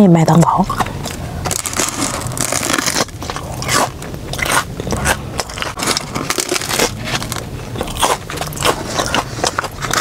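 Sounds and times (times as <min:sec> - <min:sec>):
crunchy chewing: 0:00.6 - 0:10.0.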